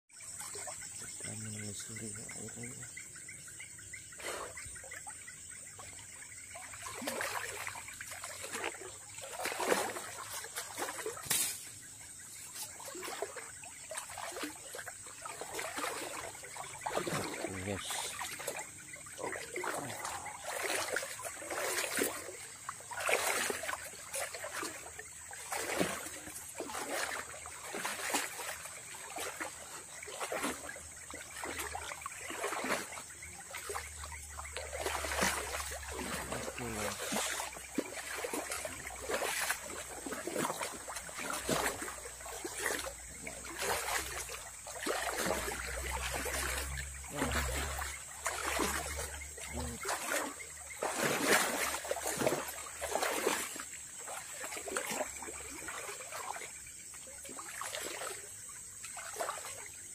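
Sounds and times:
water splashing around wading person: 0:00.2 - 0:59.9.

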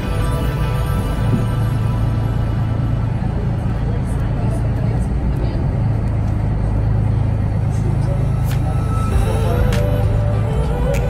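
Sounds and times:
boat engine droning: 0:00.0 - 0:11.0.

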